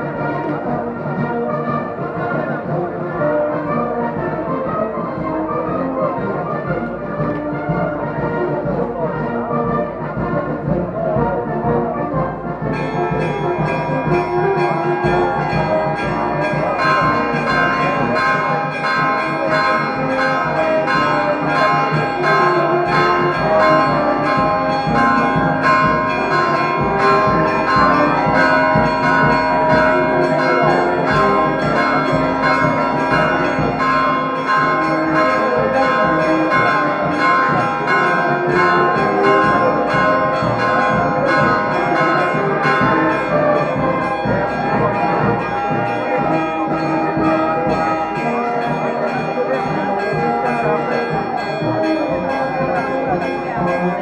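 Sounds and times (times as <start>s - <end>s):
church bells ringing a peal: 0.0s - 54.0s.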